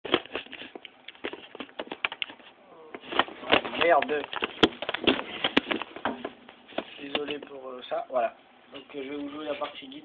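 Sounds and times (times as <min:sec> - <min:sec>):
camera handling knocks and rubbing: 0:00.1 - 0:07.5
person speaking: 0:06.8 - 0:10.0.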